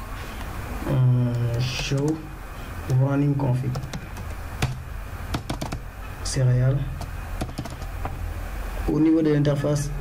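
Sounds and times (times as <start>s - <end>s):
computer keyboard key clicks: 5.4s - 5.8s, 7.0s - 8.0s.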